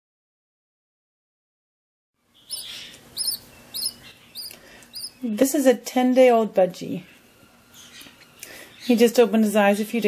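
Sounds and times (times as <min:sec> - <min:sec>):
bird chick chirping: 0:02.2 - 0:05.3.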